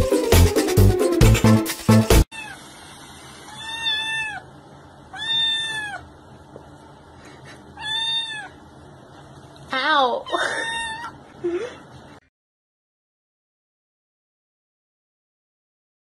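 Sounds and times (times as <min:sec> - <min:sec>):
kitten meowing: 0:03.5 - 0:04.5, 0:05.1 - 0:06.1, 0:07.8 - 0:08.6, 0:10.4 - 0:11.2.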